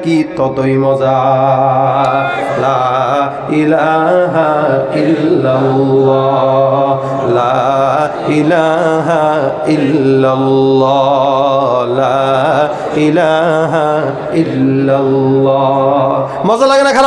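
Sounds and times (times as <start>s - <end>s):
man chanting through loudspeakers: 0.0s - 17.0s.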